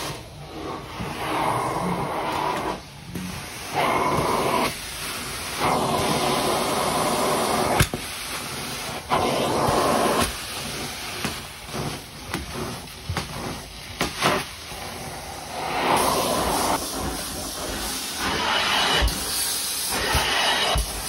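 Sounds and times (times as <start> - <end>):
carpet extraction wand suction: 0.0 - 21.0.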